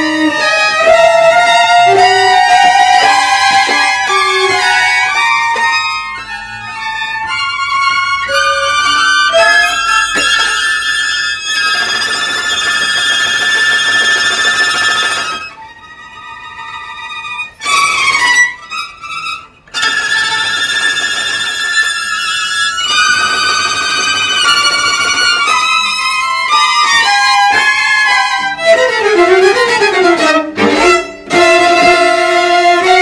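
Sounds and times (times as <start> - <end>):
string quartet playing: 0.0 - 33.0.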